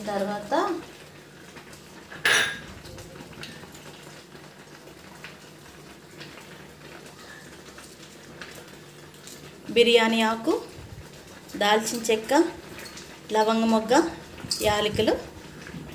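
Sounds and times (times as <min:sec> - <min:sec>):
metallic clink on steel pot: 0:02.2 - 0:02.6.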